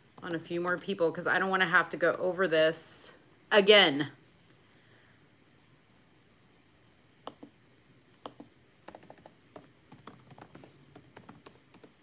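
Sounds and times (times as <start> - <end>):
faint typing: 0.0 - 0.9, 8.2 - 12.0.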